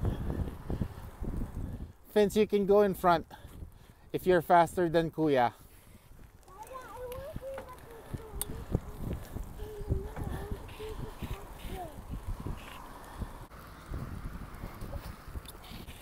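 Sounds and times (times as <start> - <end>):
bicycles rumbling on paved path: 0.0 - 16.0
child's drawn-out voice: 6.4 - 12.4.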